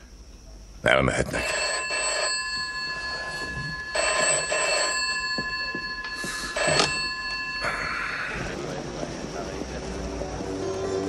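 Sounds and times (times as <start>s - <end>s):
high-pitched ringing tones: 1.1s - 9.7s.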